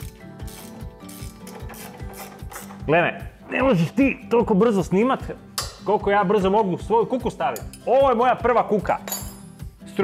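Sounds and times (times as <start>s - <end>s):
ratchet wrench clicking: 0.0s - 2.8s.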